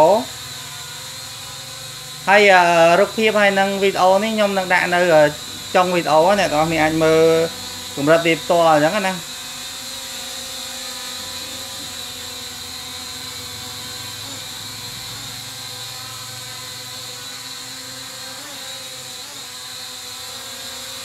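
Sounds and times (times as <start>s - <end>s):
drone propellers whining: 0.0s - 21.0s.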